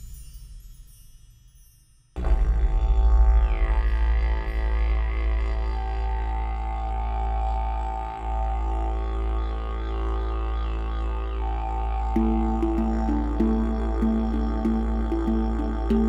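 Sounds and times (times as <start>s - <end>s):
didgeridoo drone: 2.2s - 16.0s.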